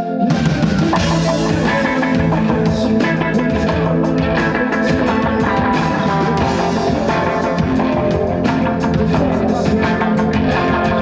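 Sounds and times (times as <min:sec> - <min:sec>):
drum kit: 0:00.0 - 0:11.0
electric guitars: 0:00.0 - 0:11.0.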